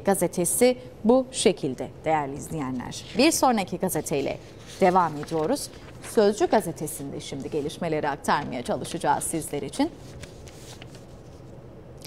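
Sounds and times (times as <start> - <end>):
low studio hum: 0.0 - 12.0
paper sheets rustling: 2.9 - 11.5.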